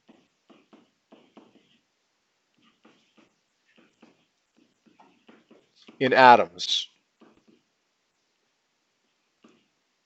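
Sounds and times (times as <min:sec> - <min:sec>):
stylus strokes on tablet screen: 0:00.0 - 0:10.0.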